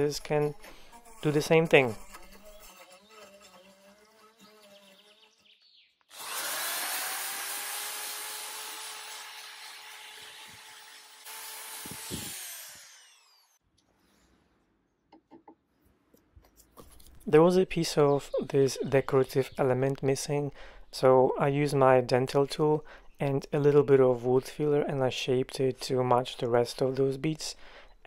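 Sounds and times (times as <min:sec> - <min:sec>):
rotary tool brush scrubbing wood: 0:00.0 - 0:05.3
faint rotary tool whine: 0:10.0 - 0:13.6.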